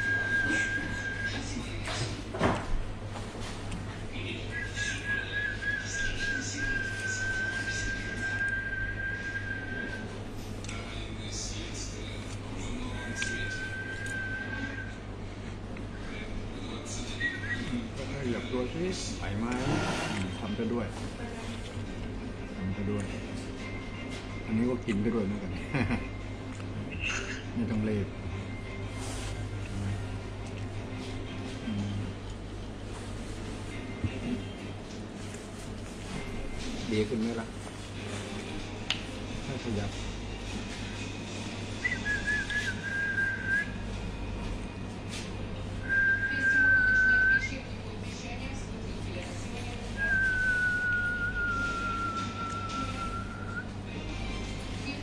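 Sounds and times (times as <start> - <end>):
steady low hum: 0.0 - 55.0
people talking: 0.4 - 2.2, 10.7 - 14.8, 31.6 - 32.0, 46.2 - 50.4, 51.8 - 53.5.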